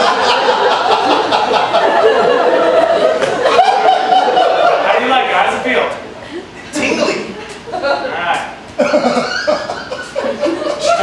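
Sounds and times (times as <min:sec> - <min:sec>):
theatre audience laughing: 0:00.0 - 0:05.0, 0:08.8 - 0:11.0.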